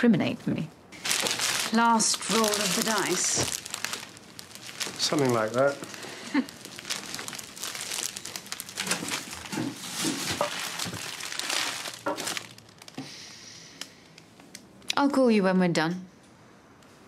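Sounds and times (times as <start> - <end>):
cellophane crinkling: 1.0 - 13.0.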